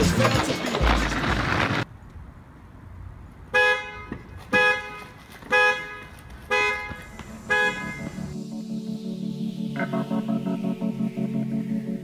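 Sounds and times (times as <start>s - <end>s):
car alarm horn honking: 3.5s - 8.4s.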